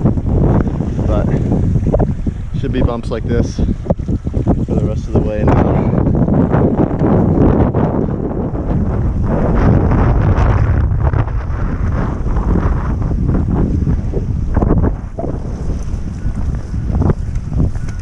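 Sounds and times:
wind buffeting microphone: 0:00.0 - 0:18.0
water rushing and splashing: 0:08.6 - 0:18.0.

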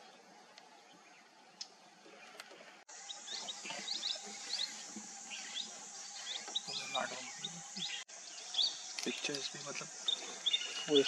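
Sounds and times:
small birds chirping: 0:00.0 - 0:11.0
steady outdoor hiss: 0:00.0 - 0:11.0.

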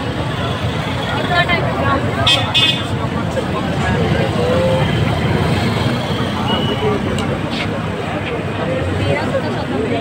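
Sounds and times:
faint voices: 0:00.0 - 0:10.0
motorbikes passing: 0:00.0 - 0:10.0
roadside traffic noise: 0:00.0 - 0:10.0.

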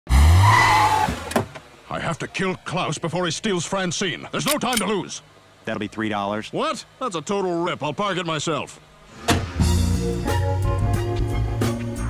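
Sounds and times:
tyre screech: 0:00.3 - 0:01.3.

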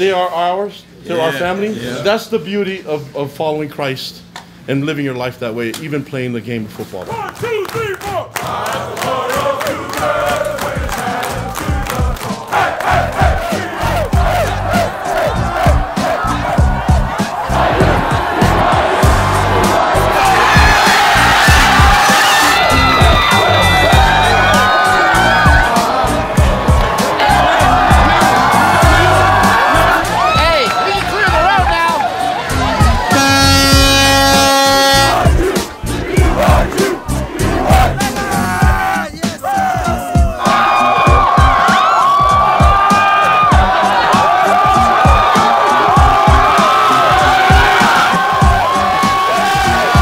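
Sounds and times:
clapping: 0:07.0 - 0:12.5
men chanting and shouting: 0:07.0 - 0:50.0
music with thumping beat: 0:09.0 - 0:50.0
truck air horn blast: 0:33.1 - 0:35.3.

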